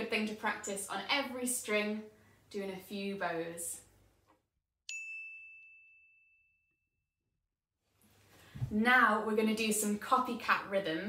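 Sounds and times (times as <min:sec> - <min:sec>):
high bell-like ding: 0:04.9 - 0:06.8.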